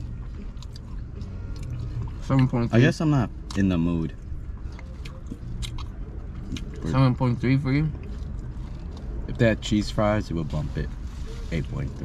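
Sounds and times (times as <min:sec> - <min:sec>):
people chewing sandwiches: 0:00.0 - 0:09.9.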